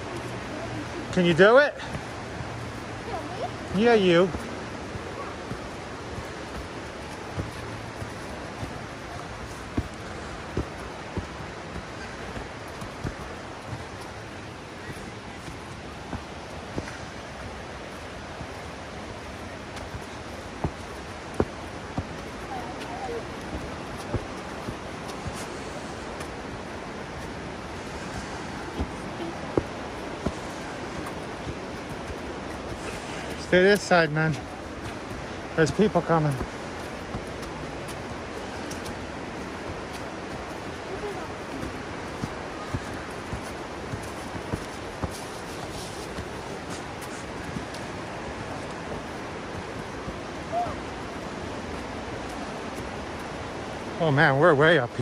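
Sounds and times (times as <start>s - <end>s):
rushing water: 0.0s - 55.0s
footsteps on dirt trail: 1.6s - 53.8s.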